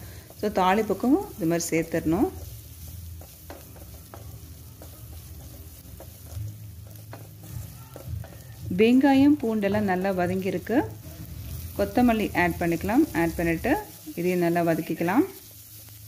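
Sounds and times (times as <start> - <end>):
food sizzling in oil: 0.0 - 16.0.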